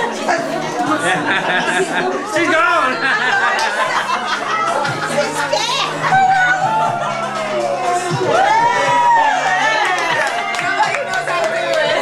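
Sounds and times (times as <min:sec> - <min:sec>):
voices chattering: 0:00.0 - 0:08.3
music playing: 0:00.0 - 0:12.0.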